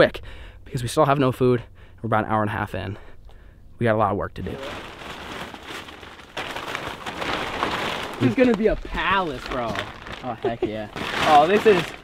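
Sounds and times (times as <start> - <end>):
plastic tarp rustling and crinkling: 4.4 - 12.0.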